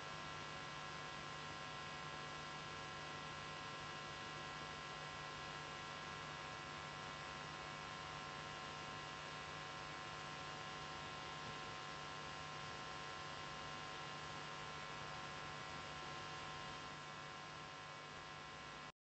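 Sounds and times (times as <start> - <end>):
electrical hum with hiss: 0.0 - 18.9.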